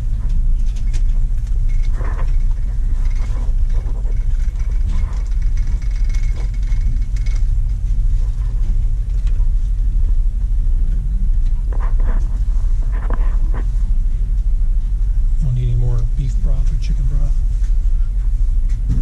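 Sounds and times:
cart rattling and clicking: 0.0 - 10.2.

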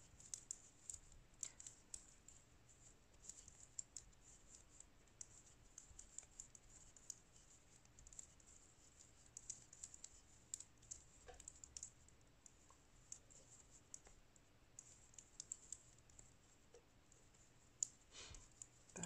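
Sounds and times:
knitting needles clicking: 0.1 - 19.0.

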